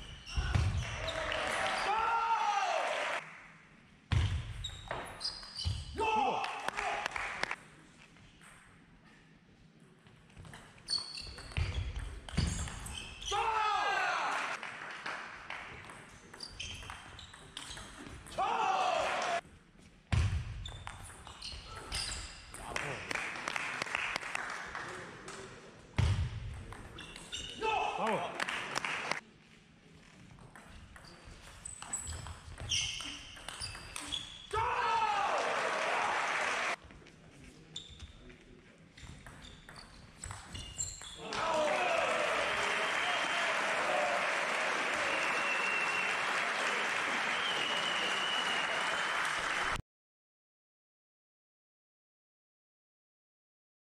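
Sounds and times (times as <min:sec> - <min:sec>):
loud shouts: 0:00.3 - 0:03.2, 0:06.0 - 0:07.4, 0:13.3 - 0:14.6, 0:18.3 - 0:19.4, 0:27.6 - 0:28.4, 0:34.5 - 0:36.8, 0:41.2 - 0:46.0.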